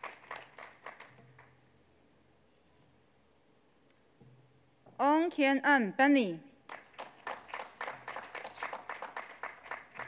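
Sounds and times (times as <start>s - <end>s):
people clapping: 0.0s - 1.6s, 6.7s - 10.0s.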